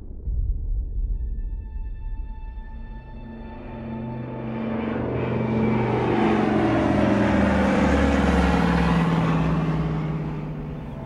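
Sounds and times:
low rumble: 0.0s - 7.2s.

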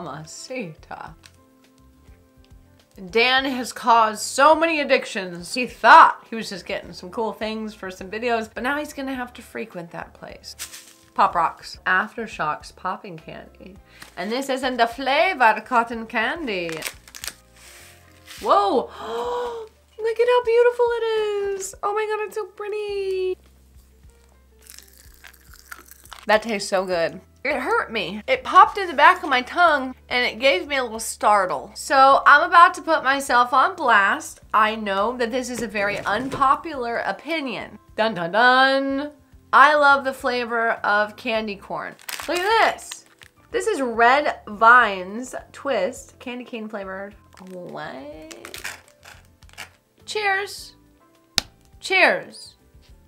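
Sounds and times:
faint background music: 0.0s - 53.0s
plastic wrapper crinkling: 10.5s - 11.2s, 16.5s - 18.5s, 24.2s - 26.3s, 41.9s - 43.5s, 47.2s - 49.8s
popping candy crackling: 16.4s - 17.5s, 24.6s - 26.6s, 41.9s - 43.6s, 47.1s - 49.8s.

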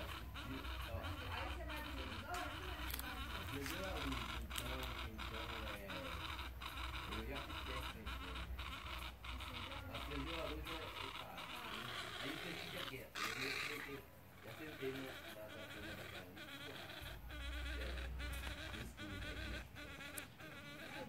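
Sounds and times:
insects buzzing chorus: 0.0s - 21.0s.

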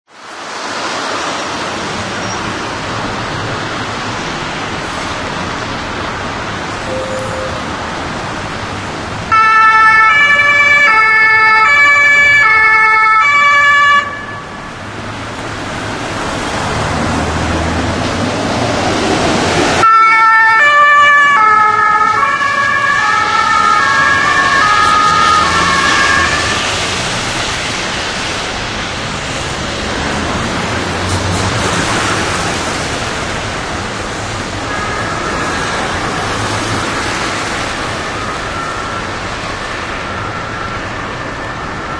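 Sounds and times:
road traffic noise: 0.1s - 41.9s
ambulance two-tone siren: 6.8s - 8.1s, 9.3s - 14.7s, 19.8s - 26.9s, 34.7s - 41.9s.

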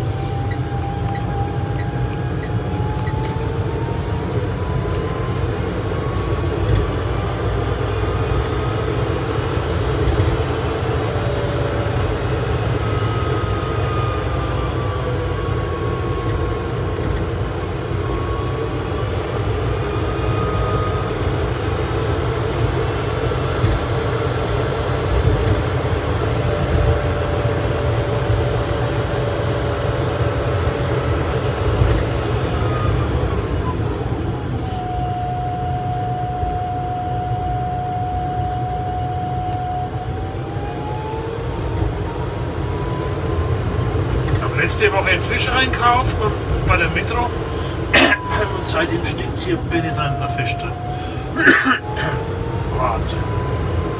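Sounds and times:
road and tyre noise: 0.0s - 53.9s.

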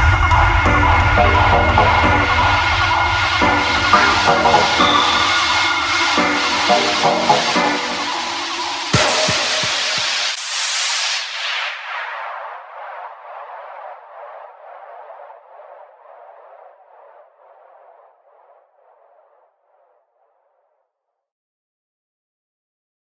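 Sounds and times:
thin echoing music tail: 0.0s - 12.4s
drum and bass music: 0.0s - 12.6s.

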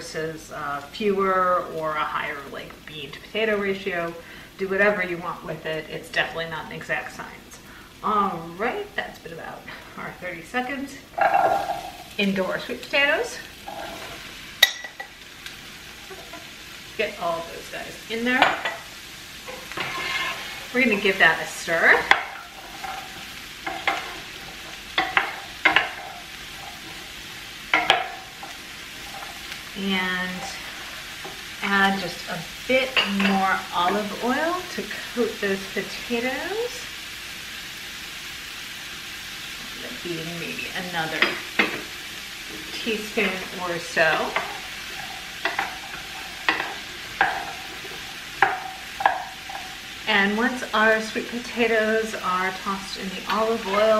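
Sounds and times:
frying sizzle: 0.0s - 53.9s
wooden spoon knocking pan: 21.9s - 26.9s, 27.7s - 29.4s, 44.1s - 49.8s
spoon knocking against pan: 48.4s - 49.7s.

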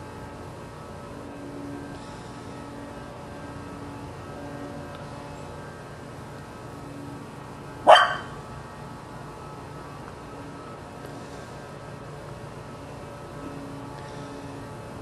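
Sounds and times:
dog barking: 7.9s - 8.3s.

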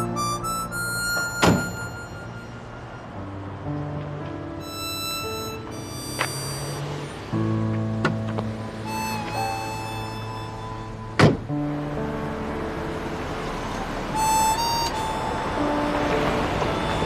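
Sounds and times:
background music: 0.0s - 17.0s
car door shutting: 1.1s - 2.0s, 6.1s - 6.7s, 7.7s - 8.6s, 11.2s - 11.5s.

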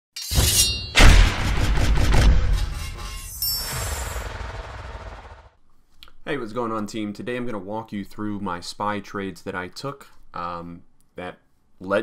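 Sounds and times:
heavy crashing hit: 0.9s - 5.5s
bright ringing burst: 2.5s - 5.5s.

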